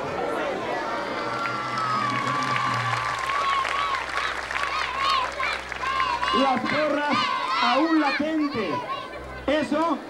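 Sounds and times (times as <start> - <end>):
crowd applauding: 0.7 - 8.2.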